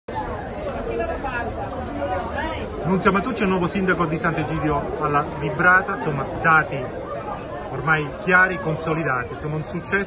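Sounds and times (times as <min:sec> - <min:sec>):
crowd chatter: 0:00.1 - 0:10.0.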